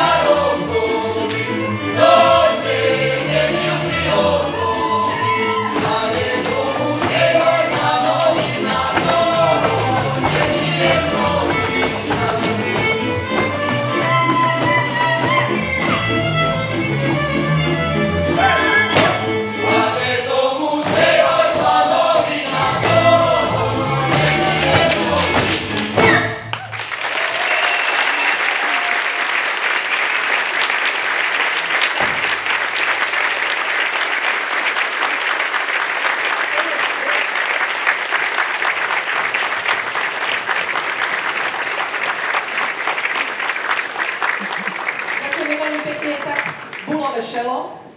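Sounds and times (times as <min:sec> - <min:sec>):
fiddle band playing: 0:00.0 - 0:26.6
folk ensemble singing: 0:00.0 - 0:26.6
audience applause: 0:23.2 - 0:47.0.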